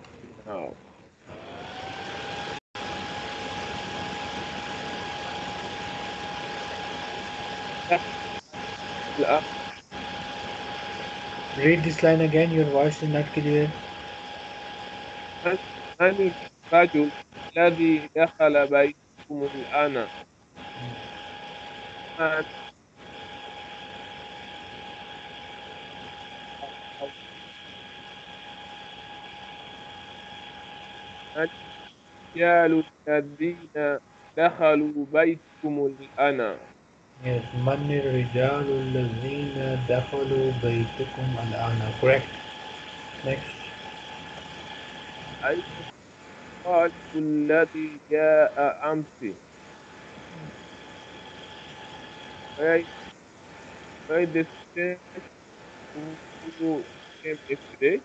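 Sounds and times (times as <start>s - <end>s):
constant high whine: 0.0s - 58.0s
steady hiss: 2.8s - 58.0s
faint voice reading: 9.2s - 9.4s, 11.6s - 13.8s, 15.5s - 20.1s, 22.2s - 22.5s, 32.4s - 42.4s, 43.2s - 43.8s, 45.4s - 45.9s, 46.7s - 49.4s, 52.6s - 52.9s, 54.1s - 55.2s, 56.0s - 58.0s.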